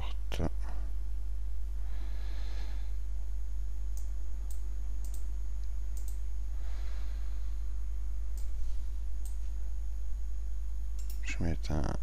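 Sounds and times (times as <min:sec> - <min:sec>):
low electrical hum: 0:00.0 - 0:12.0
computer mouse clicks: 0:04.0 - 0:06.2, 0:08.3 - 0:08.6, 0:09.2 - 0:09.5, 0:11.0 - 0:11.2.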